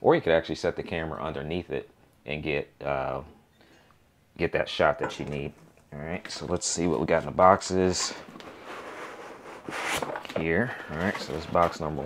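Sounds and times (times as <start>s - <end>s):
scraping rustle: 7.8s - 12.0s.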